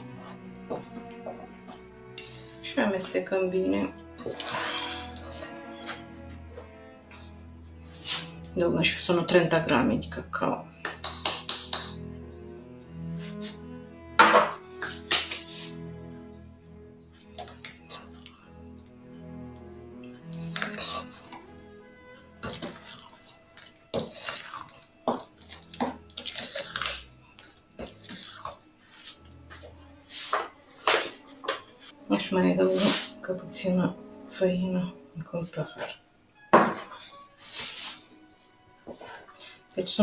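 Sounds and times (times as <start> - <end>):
soft background music: 0.0 - 40.0
spatula scraping glass bowl: 4.2 - 6.1, 7.8 - 8.4, 20.1 - 21.5, 22.4 - 31.6, 32.6 - 33.3.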